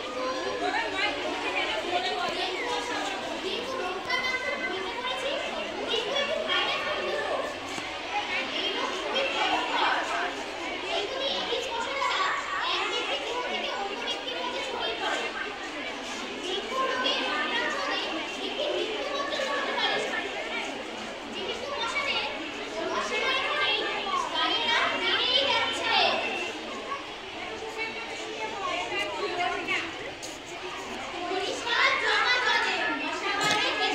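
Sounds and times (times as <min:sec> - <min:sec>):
children chattering and calling: 0:00.0 - 0:33.9.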